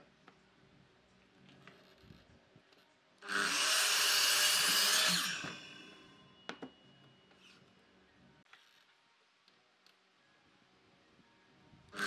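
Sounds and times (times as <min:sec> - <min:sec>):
miter saw cutting wood: 0:03.3 - 0:06.0.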